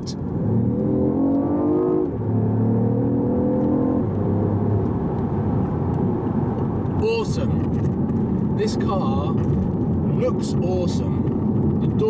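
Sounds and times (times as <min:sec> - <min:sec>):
car engine accelerating hard: 0:00.0 - 0:12.0
road noise: 0:00.0 - 0:12.0.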